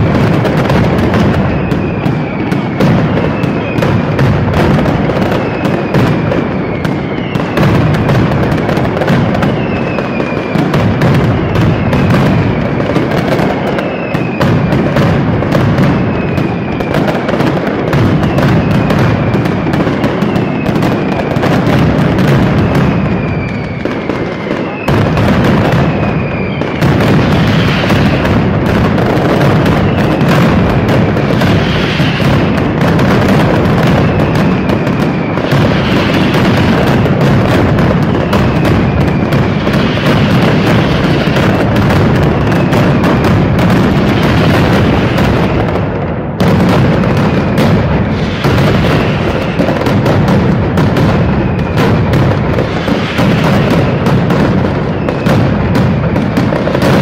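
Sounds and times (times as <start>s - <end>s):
firecracker barrage: 0.0s - 57.0s.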